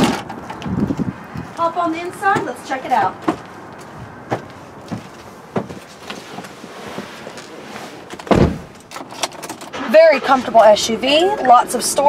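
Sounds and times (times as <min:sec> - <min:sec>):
car door shutting: 0:08.1 - 0:08.8.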